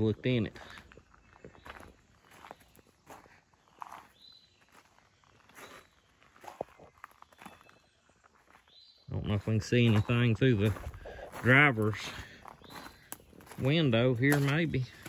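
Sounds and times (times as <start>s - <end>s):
footsteps through weeds: 0.7s - 8.8s, 9.4s - 15.0s.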